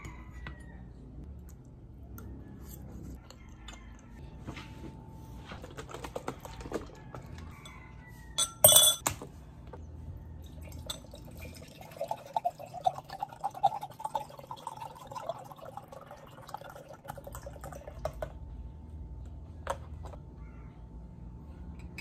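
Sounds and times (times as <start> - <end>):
glass straw clinking on glass: 8.4 - 9.0
juice pouring into glass: 10.4 - 18.1.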